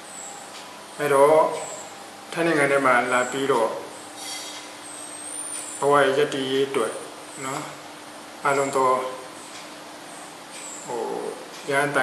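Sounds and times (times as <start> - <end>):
steady low hum: 0.0 - 12.0
man speaking: 1.0 - 1.7, 2.3 - 3.9, 5.8 - 7.8, 8.4 - 9.3, 10.9 - 12.0.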